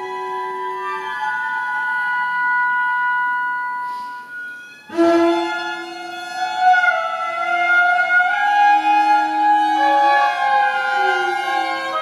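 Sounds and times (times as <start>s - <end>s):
flute and clarinet long high notes: 0.0s - 12.0s.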